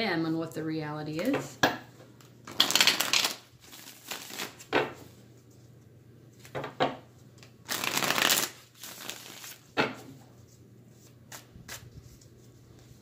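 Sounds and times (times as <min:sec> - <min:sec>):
cards snapping: 0:02.5 - 0:04.6, 0:07.7 - 0:09.6
cards rustling while shuffled: 0:02.5 - 0:04.7, 0:07.4 - 0:09.7.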